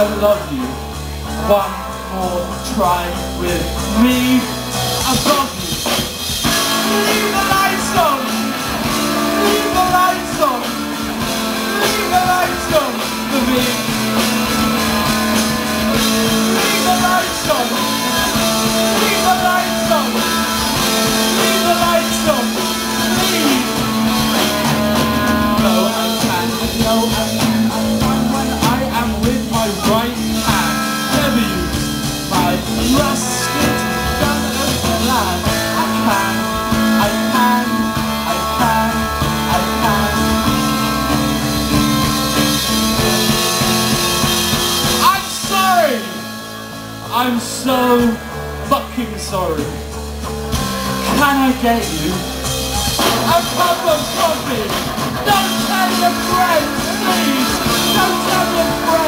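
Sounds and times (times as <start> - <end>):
drums: 0.0 - 59.0
electric guitar: 0.0 - 59.0
live rock band playing: 0.0 - 59.0.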